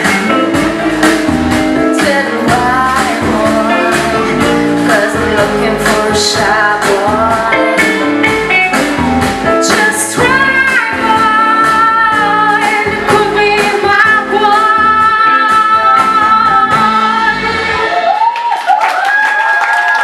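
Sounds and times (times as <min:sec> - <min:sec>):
woman singing: 0:00.0 - 0:08.2, 0:09.5 - 0:17.9
pop band playing: 0:00.0 - 0:19.2.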